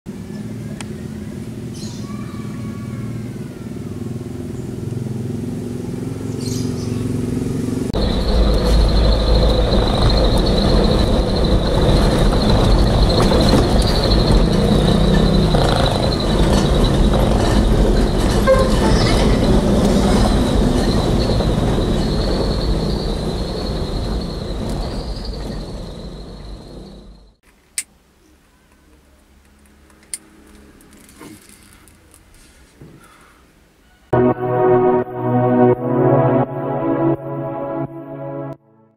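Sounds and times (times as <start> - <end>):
engine and road rumble in cab: 3.2 - 27.5
vehicle engine running: 3.3 - 27.4
steady high whine: 7.9 - 18.3.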